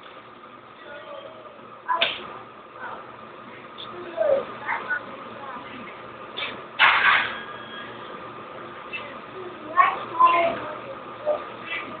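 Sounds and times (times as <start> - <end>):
child making wordless sounds: 3.8 - 5.6, 9.0 - 11.6.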